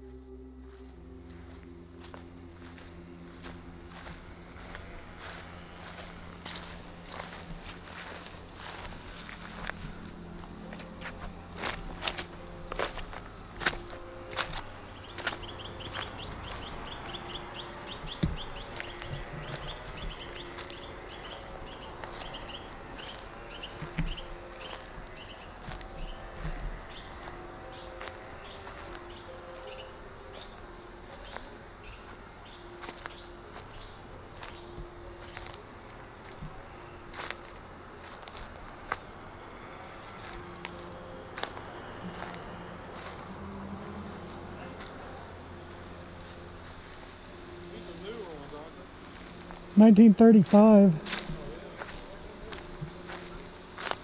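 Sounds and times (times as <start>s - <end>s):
insects trilling: 0.0s - 54.0s
repeating cricket chirp: 0.0s - 54.0s.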